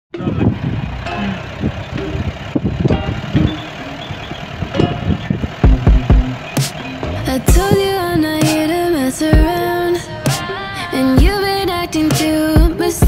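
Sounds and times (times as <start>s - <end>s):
car interior running rumble: 0.1s - 13.0s
knocks and rattles: 4.6s - 7.8s.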